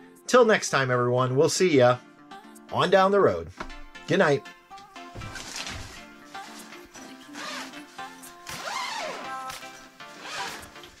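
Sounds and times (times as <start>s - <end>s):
background music: 0.0s - 11.0s
zipper being pulled: 5.3s - 11.0s.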